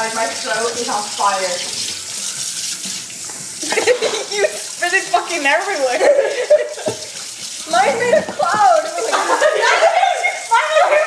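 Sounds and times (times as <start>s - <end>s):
water running from spray head: 0.0s - 11.0s.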